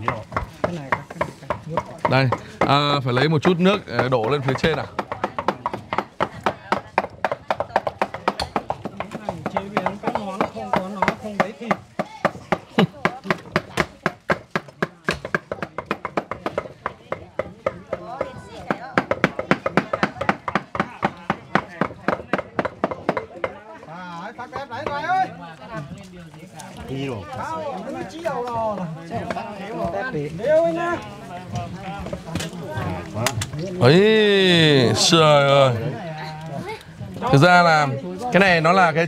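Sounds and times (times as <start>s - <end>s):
knives chopping on wooden blocks: 0.0s - 23.6s.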